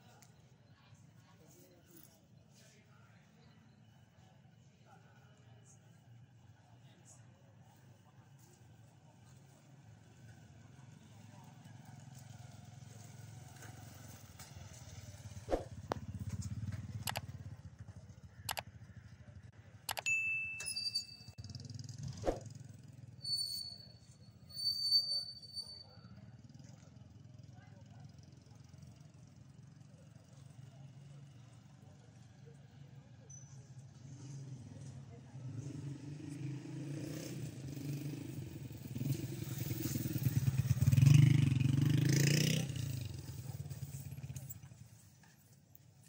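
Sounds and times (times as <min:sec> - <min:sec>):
bell-like ding: 0:19.9 - 0:21.4.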